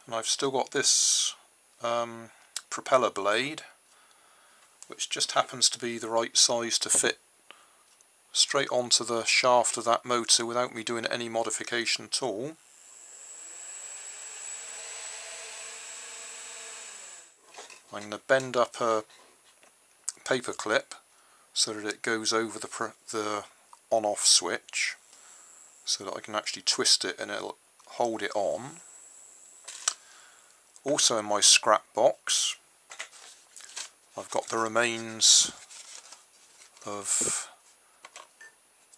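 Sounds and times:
small electric motor whirring: 12.6 - 17.4.

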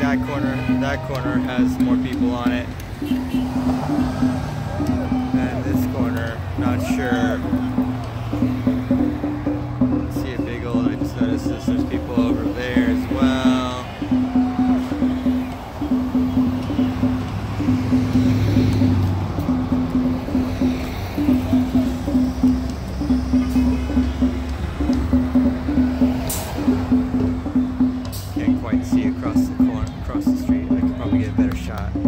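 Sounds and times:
drum beaten in quick rhythm: 0.0 - 32.0
passing traffic rumble: 0.0 - 32.0.

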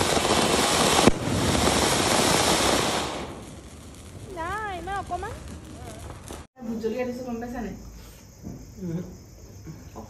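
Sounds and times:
sharp crack: 0.0 - 6.5
firework fountain hissing and crackling: 0.0 - 8.6.

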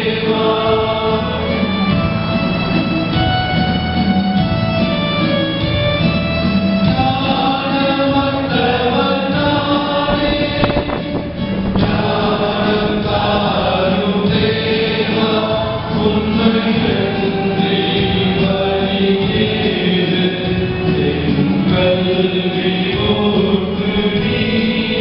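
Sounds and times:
church choir singing: 0.0 - 25.0
instrumental accompaniment: 0.0 - 25.0.

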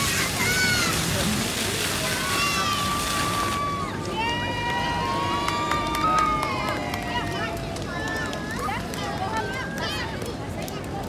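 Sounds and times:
fountain water jets splashing: 0.0 - 11.0.

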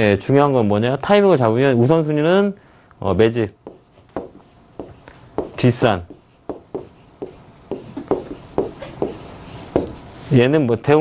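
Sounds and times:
pen tapping and scratching on glass: 3.6 - 10.0.

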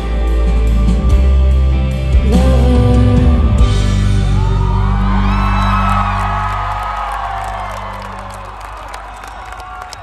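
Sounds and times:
crowd whooping and cheering: 4.0 - 10.0.

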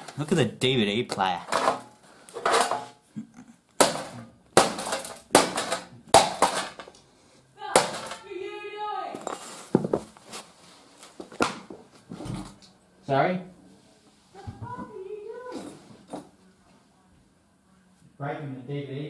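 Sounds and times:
hammer pounding metal casing: 3.8 - 6.9, 7.7 - 8.3.

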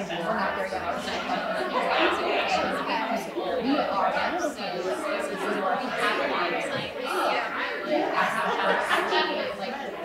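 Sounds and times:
women chattering: 0.0 - 10.0.

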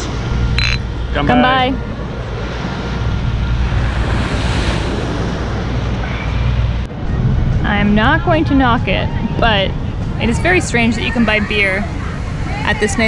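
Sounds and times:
wind buffeting microphone: 0.2 - 13.0.

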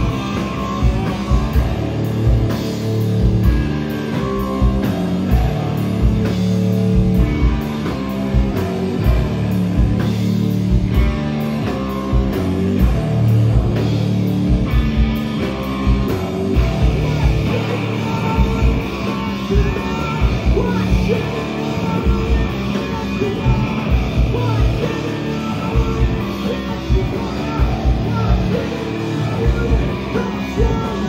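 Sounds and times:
distorted electric guitars: 0.0 - 31.0
drum kit beat: 0.0 - 31.0
electric bass: 0.0 - 31.0.

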